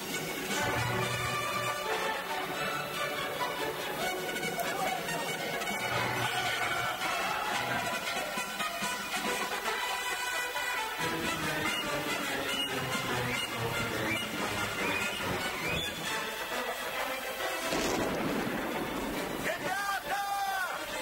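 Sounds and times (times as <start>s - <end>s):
orchestral score: 0.0s - 21.0s
men shouting: 4.6s - 8.8s, 19.5s - 21.0s.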